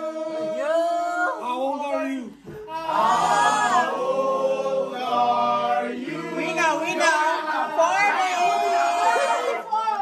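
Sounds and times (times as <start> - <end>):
group singing unaccompanied: 0.0 - 1.4, 2.6 - 9.7.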